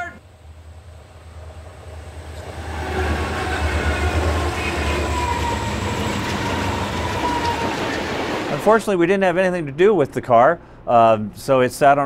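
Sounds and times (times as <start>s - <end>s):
thin high whine from train: 0.0s - 8.8s
train wheels rumbling on rails: 0.2s - 9.1s.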